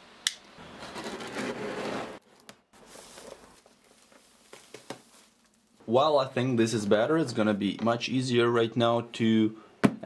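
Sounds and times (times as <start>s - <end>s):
plastic wrap crinkling: 2.2s - 5.8s.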